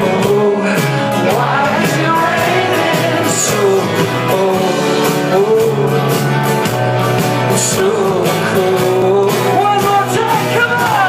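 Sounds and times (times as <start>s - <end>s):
acoustic guitar strumming: 0.0s - 11.0s
bass guitar: 0.0s - 11.0s
electric guitar: 0.0s - 11.0s
man singing lead vocals: 0.0s - 11.0s
steady drumbeat: 0.0s - 11.0s.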